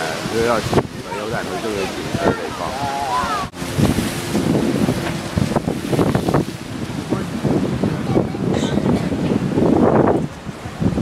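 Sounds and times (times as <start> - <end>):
surf breaking against seawall: 0.0 - 11.0
wind buffeting microphone: 0.0 - 11.0.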